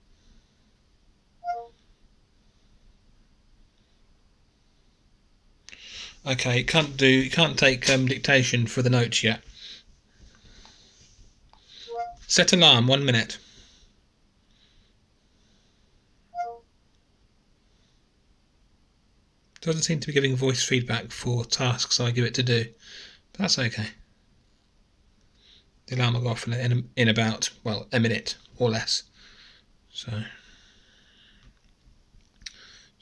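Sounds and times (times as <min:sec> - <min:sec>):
short electronic chime: 0:01.4 - 0:01.7.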